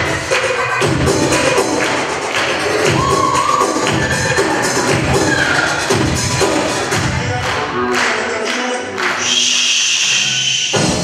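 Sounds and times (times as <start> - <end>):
dance music with percussion: 0.0 - 11.0.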